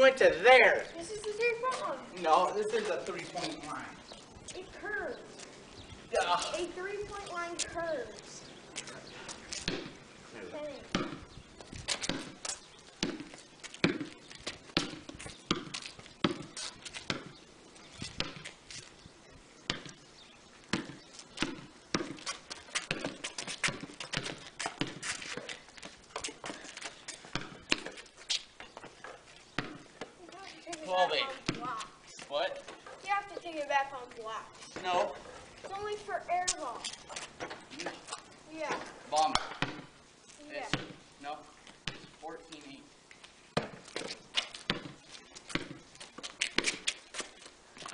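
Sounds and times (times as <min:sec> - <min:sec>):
voices: 0:00.0 - 0:09.3, 0:30.2 - 0:39.5
basketball bouncing on concrete: 0:09.5 - 0:10.0, 0:10.8 - 0:17.4, 0:18.0 - 0:18.6, 0:19.7 - 0:20.0, 0:20.7 - 0:32.0, 0:38.7 - 0:40.0, 0:40.7 - 0:41.0, 0:41.8 - 0:42.2, 0:43.5 - 0:47.9.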